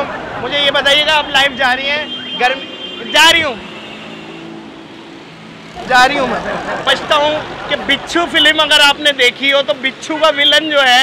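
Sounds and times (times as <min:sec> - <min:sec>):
man talking: 0:00.0 - 0:03.7, 0:05.8 - 0:11.0
street traffic hum: 0:00.0 - 0:11.0.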